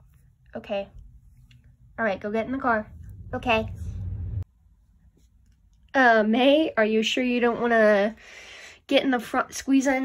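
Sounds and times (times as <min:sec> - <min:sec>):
low recording rumble: 0:00.0 - 0:05.1.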